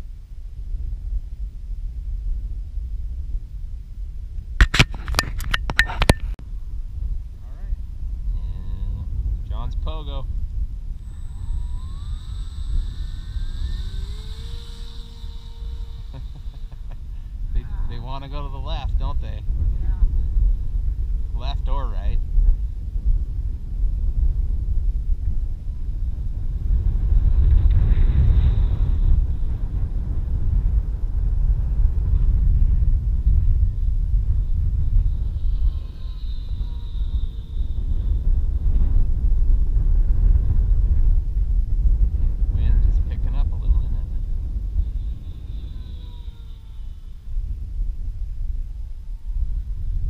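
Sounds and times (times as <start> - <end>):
wind rumbling on microphone: 0.0 - 50.0
faint high whine: 4.4 - 22.9, 24.8 - 50.0.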